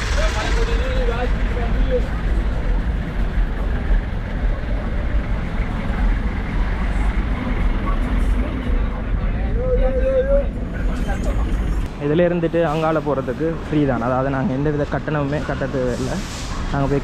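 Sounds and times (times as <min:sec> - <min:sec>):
vehicles rumbling: 0:00.0 - 0:17.0.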